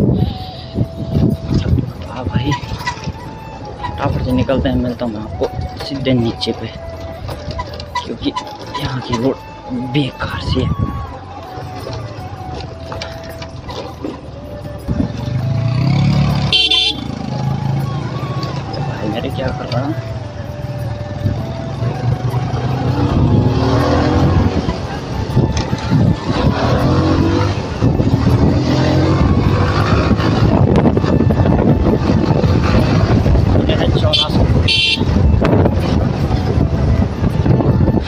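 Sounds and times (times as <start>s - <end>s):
motorcycle engine running: 11.3s - 38.0s
short high-pitched horn toot: 16.4s - 17.2s, 34.1s - 35.2s.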